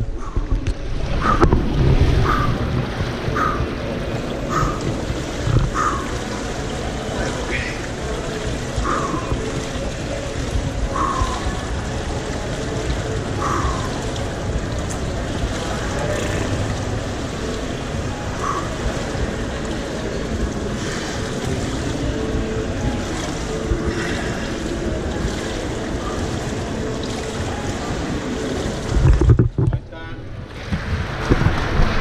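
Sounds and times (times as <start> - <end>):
distant voices: 0.0 - 28.9
echoing water movement: 0.0 - 32.0.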